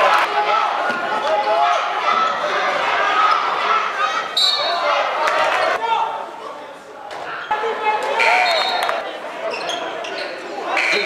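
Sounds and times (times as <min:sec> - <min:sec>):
spectators talking: 0:00.0 - 0:11.0
sneakers squeaking: 0:04.3 - 0:04.8, 0:08.2 - 0:11.0.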